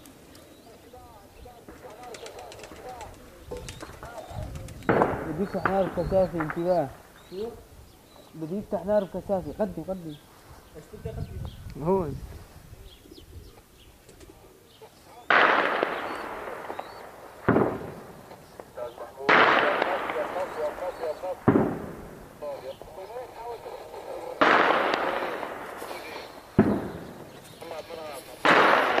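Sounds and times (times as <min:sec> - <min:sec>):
heavy explosions echoing: 0:04.4 - 0:07.1, 0:15.3 - 0:23.0, 0:23.8 - 0:29.0
heavy weapons fire: 0:15.3 - 0:18.2, 0:19.3 - 0:22.4, 0:24.4 - 0:27.4, 0:28.4 - 0:29.0.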